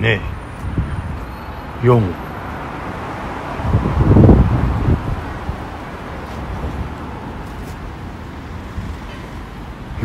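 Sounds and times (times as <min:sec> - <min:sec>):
wind buffeting microphone: 0:00.0 - 0:01.4, 0:02.6 - 0:10.0
street traffic: 0:00.0 - 0:10.0.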